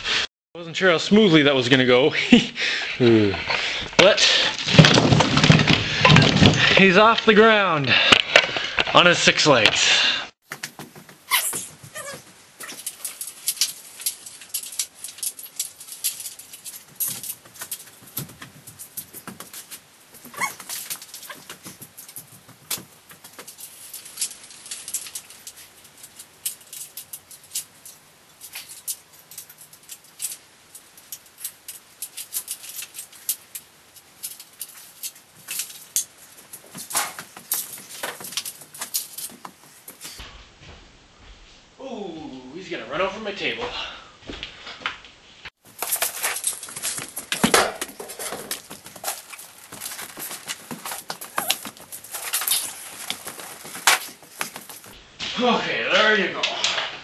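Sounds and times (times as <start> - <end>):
robot metal frame clicking and creaking: 11.1 - 40.2, 45.7 - 55.0.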